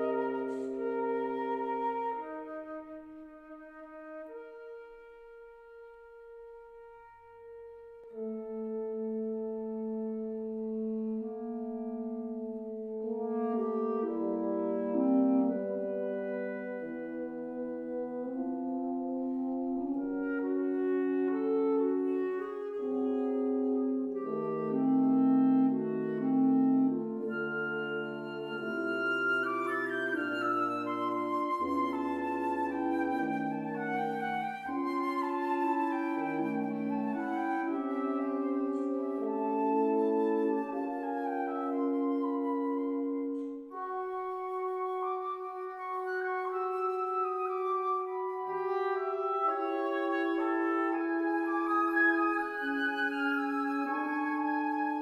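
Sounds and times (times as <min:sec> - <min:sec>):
wind quintet playing chamber music: 0:00.0 - 0:55.0.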